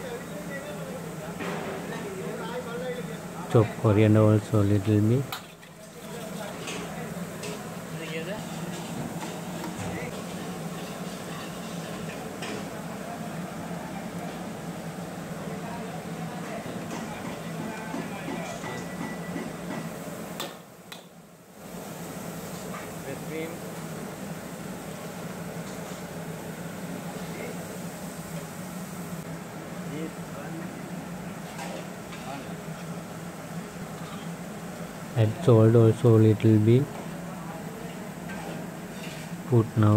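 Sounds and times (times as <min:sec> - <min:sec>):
low kitchen hum: 0:00.0 - 0:39.9
metal ladle scraping wok: 0:10.7 - 0:12.1.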